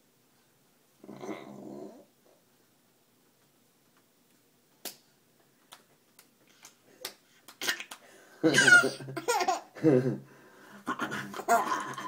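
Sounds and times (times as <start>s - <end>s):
low buzzy vocal sound: 1.0s - 2.1s.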